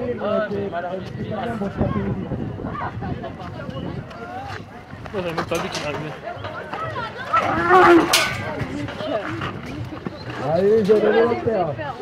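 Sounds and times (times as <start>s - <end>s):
onlookers' voices: 0.0s - 12.0s
bull bellowing: 7.4s - 8.2s.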